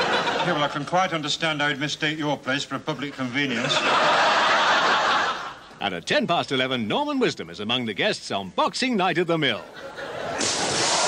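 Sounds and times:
studio audience laughing: 0.0 - 1.3, 3.4 - 5.8, 9.6 - 11.0.

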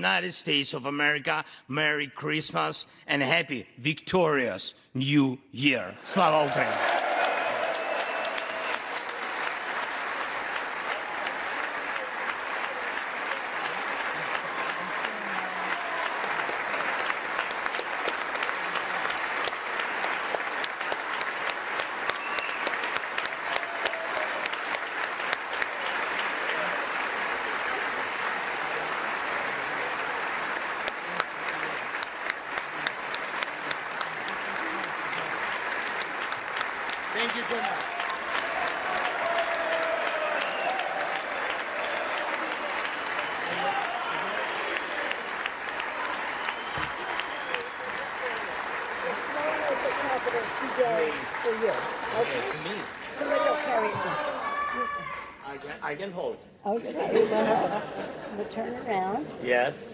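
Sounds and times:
crowd applauding: 6.0 - 55.6.

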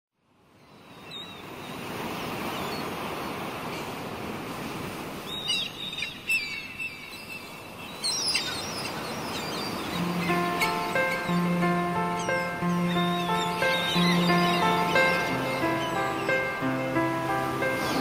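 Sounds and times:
sea surf washing: 1.4 - 18.0.

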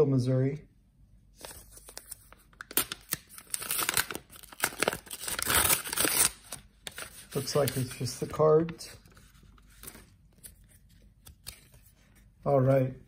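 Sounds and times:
paper envelope ripping: 1.4 - 11.9.

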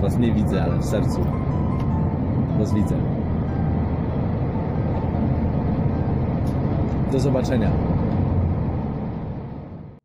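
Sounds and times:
vehicle rumble from inside cabin: 0.0 - 10.0.

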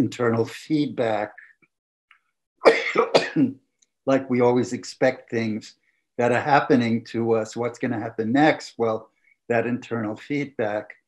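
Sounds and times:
man coughing: 2.7 - 3.5.

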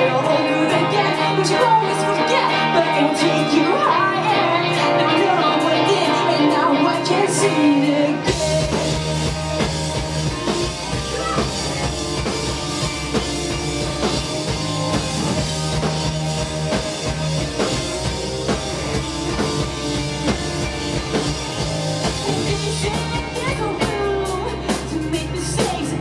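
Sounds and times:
bass guitar: 0.0 - 26.0
electric guitars: 0.0 - 26.0
drum kit beat: 8.2 - 26.0.

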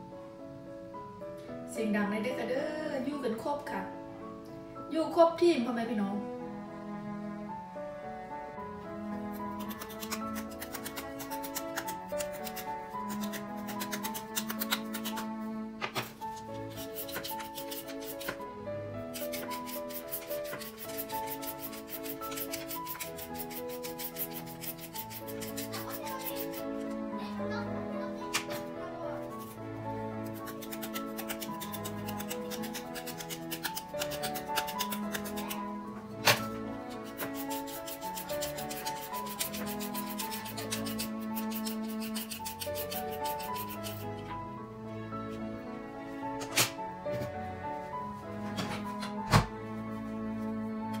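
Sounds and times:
background music: 0.0 - 51.0
peeler scraping a carrot: 9.3 - 15.3, 16.2 - 18.4, 19.1 - 26.9, 29.3 - 29.6, 30.2 - 35.7, 36.3 - 44.1.

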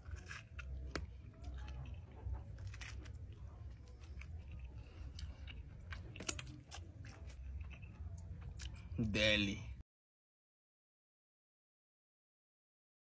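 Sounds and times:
chewing crunchy food: 0.0 - 9.0.

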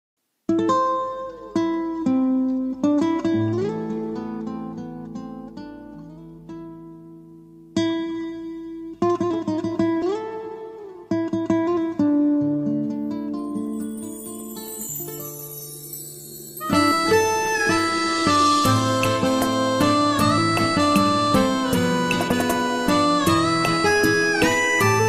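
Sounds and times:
plucked string melody: 0.5 - 25.0.

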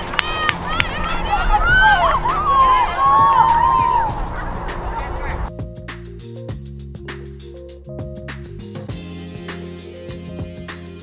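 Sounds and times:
children whooping and yelling: 0.0 - 5.4
background music: 0.0 - 11.0.

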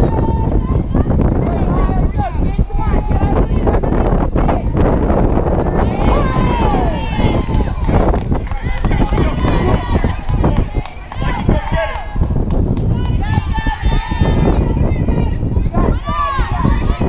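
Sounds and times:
players shouting and calling out: 0.0 - 17.0.

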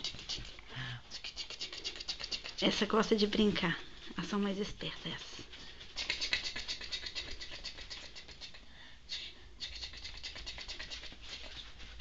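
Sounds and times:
ferret clicks and scratches: 1.2 - 2.8, 6.0 - 8.6, 9.6 - 12.0.

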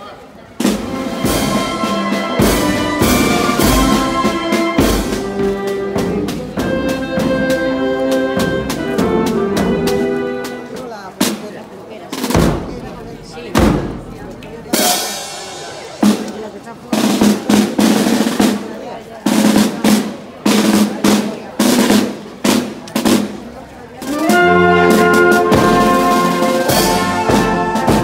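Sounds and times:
brass band playing: 0.5 - 28.0
snare drum: 0.6 - 10.6, 12.2 - 12.9, 13.5 - 14.1, 14.7 - 23.4, 24.0 - 28.0
bass drum: 12.2 - 18.6.

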